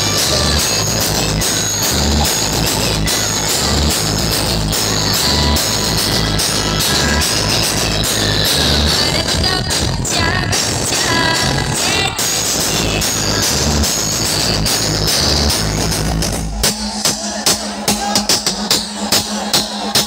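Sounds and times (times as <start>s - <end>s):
loud dance music with heavy bass: 0.0s - 20.0s.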